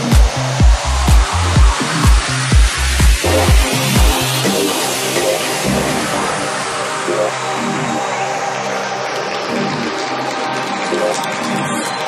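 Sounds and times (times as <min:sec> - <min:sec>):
kick drum: 0:00.0 - 0:04.4
bass and chord stabs: 0:00.0 - 0:08.1
noise sweep falling in pitch: 0:00.0 - 0:10.1.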